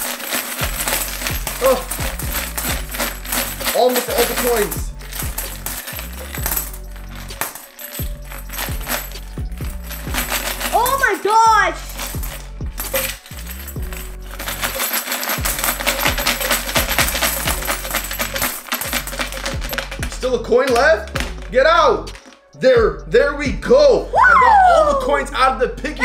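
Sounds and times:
coins clinking onto a heap: 0:00.0 - 0:22.6
coins rattling in plastic piggy bank: 0:00.0 - 0:22.6
background music: 0:00.0 - 0:26.0.

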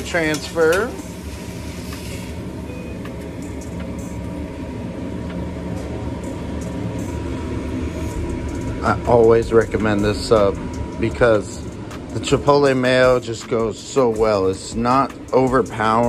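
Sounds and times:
faint steady whine: 0:00.0 - 0:16.0
kitchen equipment hum: 0:00.0 - 0:16.0.

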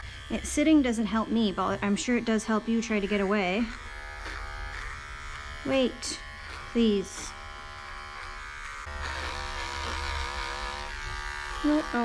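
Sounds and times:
electric pet clipper humming: 0:00.0 - 0:12.0.

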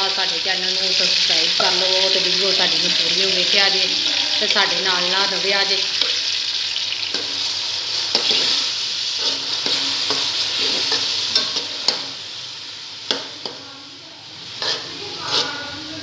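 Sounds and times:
meat sizzling in hot oil: 0:00.0 - 0:16.0
metal spoon scraping a pot: 0:07.1 - 0:12.2, 0:14.5 - 0:15.8.

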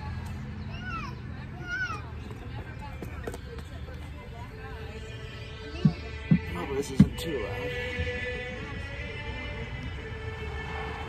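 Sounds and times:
footsteps on brick steps: 0:05.7 - 0:07.2.

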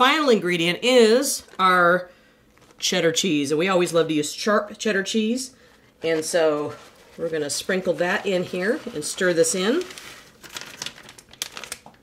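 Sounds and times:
plastic bag crinkling: 0:00.9 - 0:03.2, 0:05.7 - 0:12.0.

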